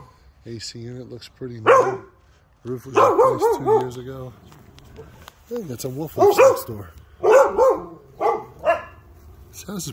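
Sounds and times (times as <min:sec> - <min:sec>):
dog barking: 0:01.6 - 0:02.2, 0:02.9 - 0:04.0, 0:06.1 - 0:09.1.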